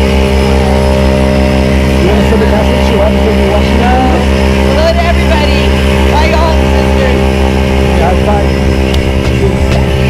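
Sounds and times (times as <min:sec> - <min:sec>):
people's voices: 0:00.0 - 0:10.0
propeller aircraft engine running: 0:00.0 - 0:10.0.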